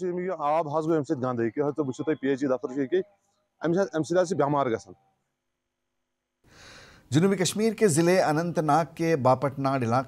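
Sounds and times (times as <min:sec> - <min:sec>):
man speaking: 0:00.0 - 0:05.0, 0:07.1 - 0:10.0
soft breath-like hiss: 0:06.4 - 0:07.1.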